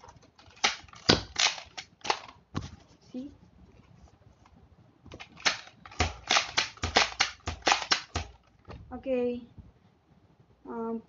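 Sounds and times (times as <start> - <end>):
toy blaster plastic clicks: 0.4 - 2.3, 5.2 - 8.4.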